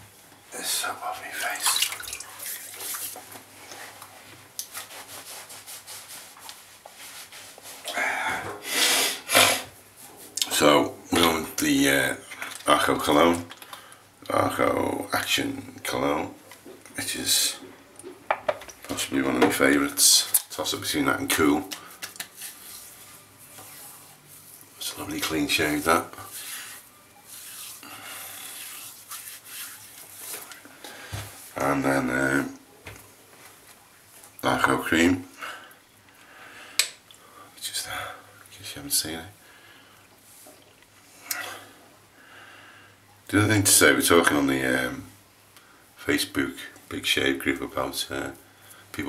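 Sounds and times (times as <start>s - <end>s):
faint rubbing hiss: 0.1s - 13.9s, 18.8s - 35.1s, 37.7s - 41.7s
towel rubbing face: 4.6s - 7.9s, 25.5s - 30.6s.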